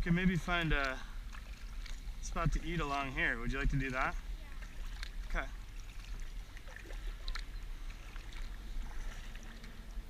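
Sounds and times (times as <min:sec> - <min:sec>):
low steady rumble: 0:00.0 - 0:10.0
paddles splashing in water: 0:00.0 - 0:10.0
water dripping: 0:04.4 - 0:10.0.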